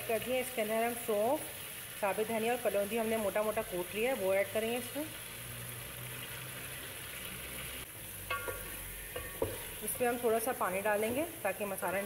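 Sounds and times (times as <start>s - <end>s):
vegetables sizzling in oil: 0.0s - 12.0s
wooden spoon stirring pot: 8.3s - 11.3s.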